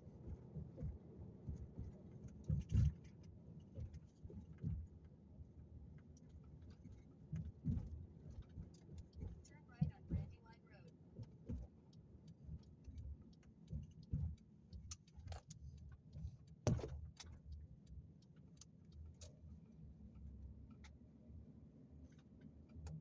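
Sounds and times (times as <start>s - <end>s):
car engine and road rumble: 0.0s - 23.0s
small clicks and rattles: 5.9s - 21.1s.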